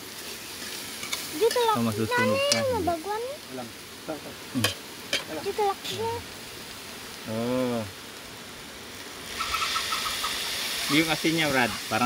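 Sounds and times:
food sizzling in a wok: 0:00.0 - 0:12.0.

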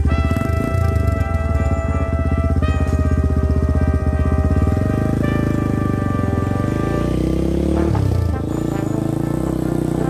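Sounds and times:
background music of held chords: 0:00.0 - 0:10.0
motorcycle engine idling: 0:00.0 - 0:10.0.

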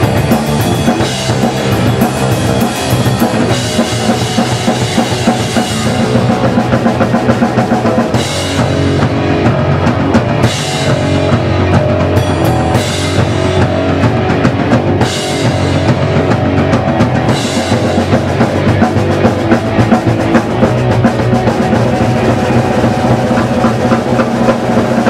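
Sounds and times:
drum kit: 0:00.0 - 0:25.0
electric bass: 0:00.0 - 0:25.0
electric guitar: 0:00.0 - 0:25.0.

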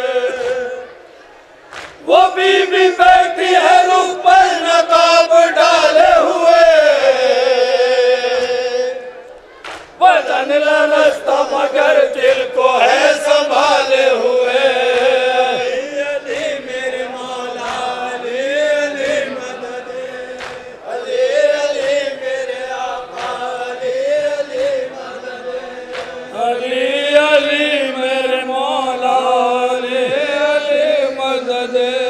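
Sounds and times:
men chanting into a microphone: 0:00.0 - 0:01.0, 0:02.0 - 0:09.3, 0:10.0 - 0:32.0.

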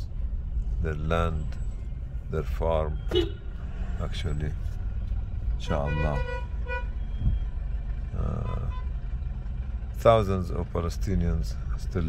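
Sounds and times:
car engine and road noise: 0:00.0 - 0:12.0
car horn beeps: 0:03.0 - 0:03.6, 0:05.6 - 0:07.4, 0:08.3 - 0:09.0.

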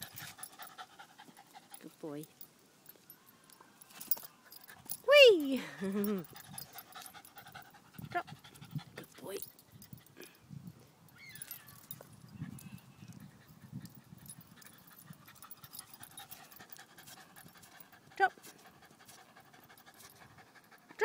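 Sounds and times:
dog panting faintly: 0:00.0 - 0:02.5, 0:05.6 - 0:10.4, 0:11.4 - 0:21.0.

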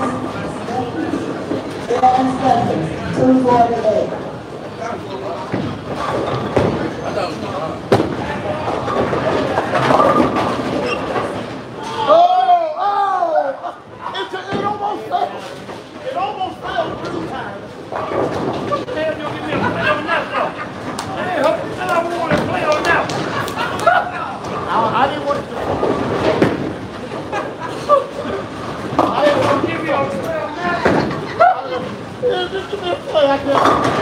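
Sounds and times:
bowling balls rolling: 0:00.0 - 0:11.8, 0:15.4 - 0:34.0
chatter of voices: 0:00.0 - 0:34.0
bowling pins crashing: 0:07.8 - 0:11.6, 0:25.3 - 0:27.6, 0:33.4 - 0:34.0.

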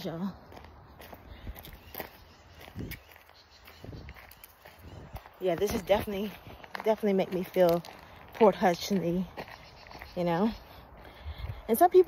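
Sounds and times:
faint outdoor background: 0:00.0 - 0:12.0
footsteps on leafy dirt trail: 0:00.0 - 0:12.0.

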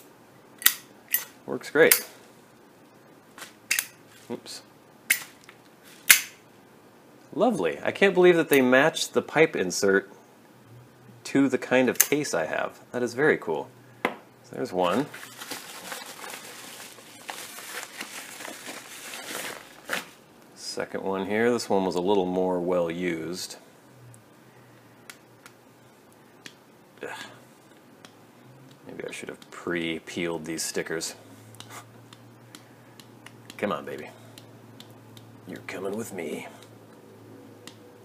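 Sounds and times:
padded envelope crinkling: 0:14.8 - 0:20.2.

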